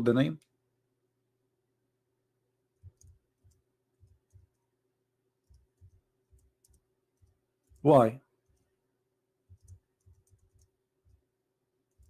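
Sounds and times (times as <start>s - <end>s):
man speaking: 0.0s - 0.4s, 7.8s - 8.2s
keyboard and mouse clicks: 2.8s - 4.6s, 5.4s - 8.7s, 9.4s - 11.2s.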